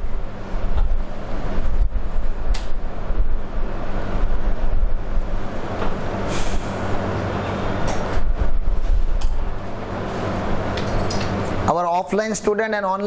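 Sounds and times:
low hum: 0:00.0 - 0:11.7
rumbling background noise: 0:00.0 - 0:13.0
brief hisses: 0:06.2 - 0:06.9.

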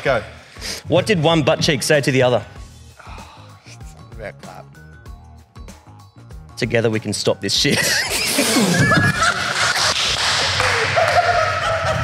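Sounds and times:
man laughing: 0:07.7 - 0:10.0, 0:10.6 - 0:12.0.

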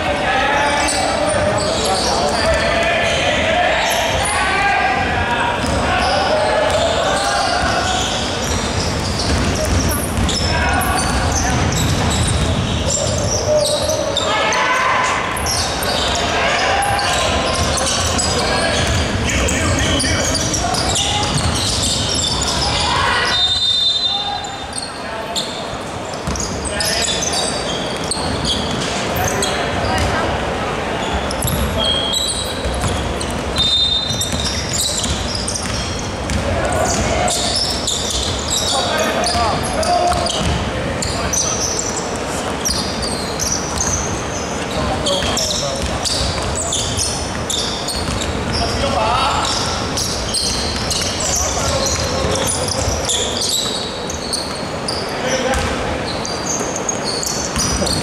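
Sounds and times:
players shouting and chatting: 0:00.0 - 0:58.0
basketball bouncing on wooden floor: 0:08.4 - 0:10.5, 0:21.2 - 0:21.6, 0:34.2 - 0:37.1, 0:40.1 - 0:40.7, 0:55.5 - 0:55.7.

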